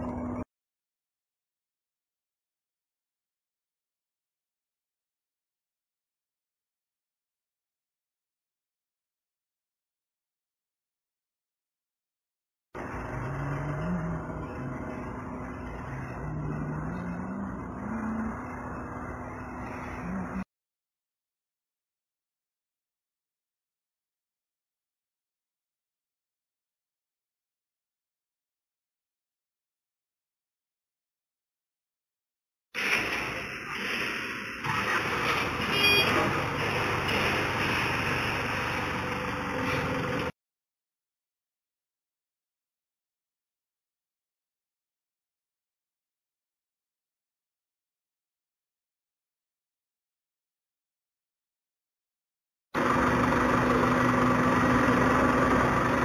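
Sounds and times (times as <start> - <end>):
forklift engine running: 0.0 - 0.4, 12.8 - 20.5, 32.9 - 40.3, 52.8 - 56.0
engine revving: 12.8 - 20.5
brief high tone: 34.7 - 36.3.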